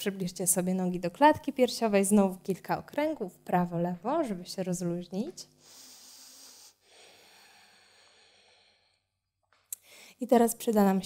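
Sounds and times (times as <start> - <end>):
woman breathing faintly: 5.6 - 9.1, 9.8 - 10.2.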